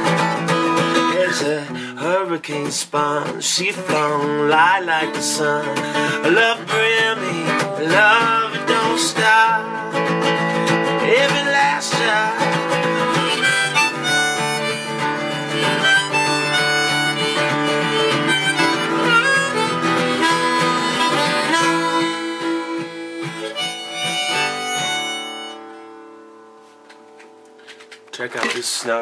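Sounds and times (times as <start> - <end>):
harmonica melody: 0.0 - 2.1, 3.6 - 28.1
strummed acoustic guitar: 0.0 - 29.0.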